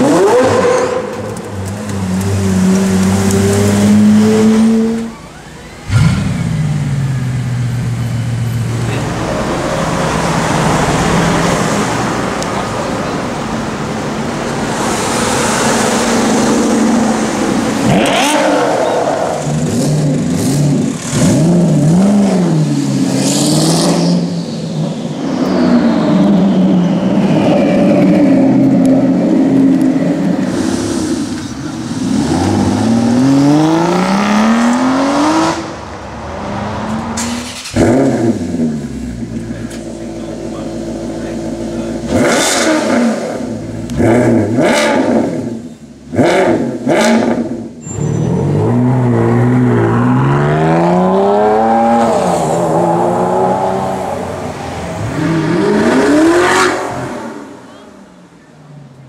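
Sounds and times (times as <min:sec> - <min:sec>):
supercar engines revving: 0:00.0 - 0:59.0.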